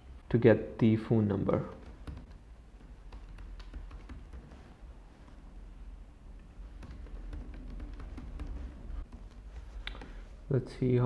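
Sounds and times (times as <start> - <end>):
low steady hum: 0.0 - 11.0
keyboard typing: 1.7 - 5.4, 6.6 - 10.3.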